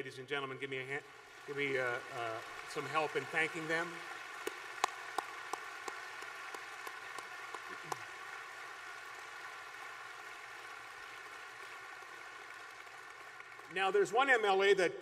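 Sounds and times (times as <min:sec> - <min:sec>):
audience applauding: 0:01.1 - 0:14.8
sharp close claps: 0:02.3 - 0:13.8.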